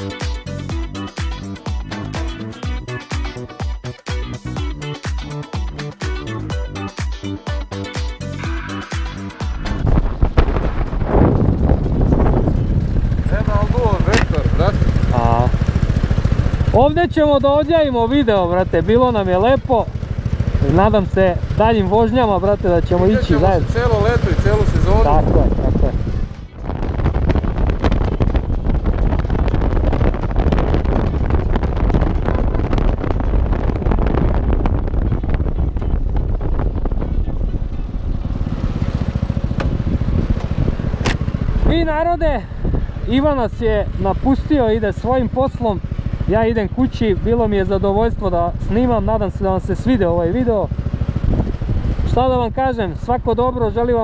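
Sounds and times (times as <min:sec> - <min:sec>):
wind rumbling on microphone: 0:09.5 - 0:54.0
motorcycle engine idling: 0:10.6 - 0:54.0.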